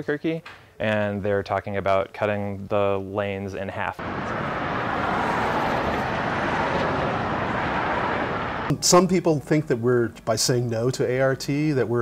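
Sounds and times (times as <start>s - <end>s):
cars driving past: 4.0s - 8.7s.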